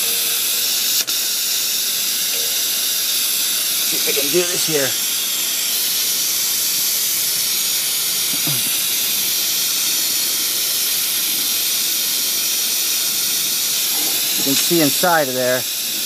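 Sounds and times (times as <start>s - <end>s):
pressure tank hissing: 0.0s - 16.0s.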